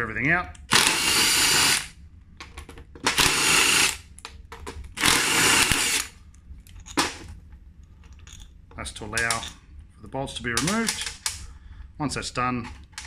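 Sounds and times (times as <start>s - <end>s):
cordless drill whirring: 0.7s - 1.9s, 3.1s - 4.0s, 5.0s - 6.1s
metal parts clicking: 8.0s - 8.5s, 9.1s - 9.6s, 10.6s - 11.4s.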